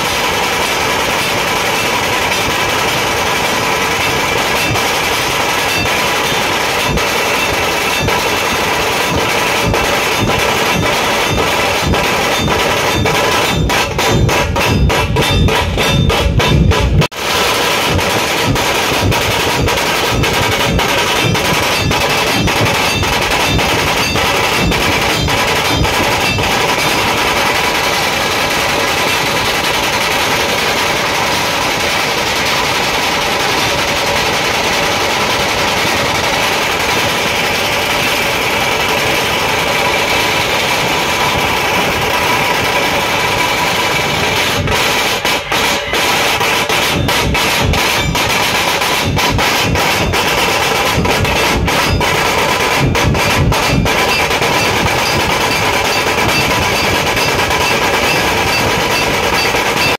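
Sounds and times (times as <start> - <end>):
barrel drums playing fast rhythm: 0.0 - 59.9.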